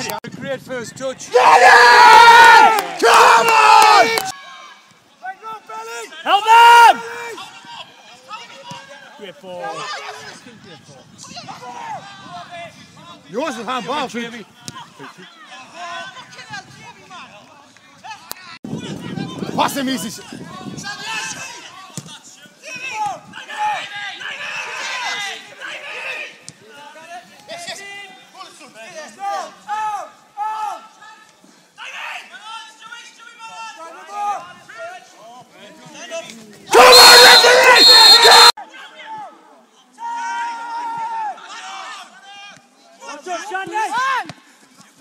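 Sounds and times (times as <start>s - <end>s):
men shouting: 1.3s - 4.2s, 36.7s - 38.5s.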